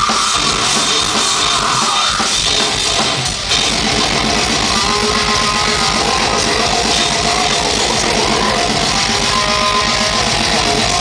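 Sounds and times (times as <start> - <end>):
death metal band playing live: 0.0 - 11.0.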